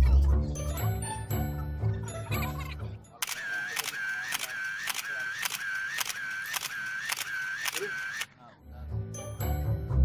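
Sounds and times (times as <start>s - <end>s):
camera shutter burst: 3.2s - 8.3s.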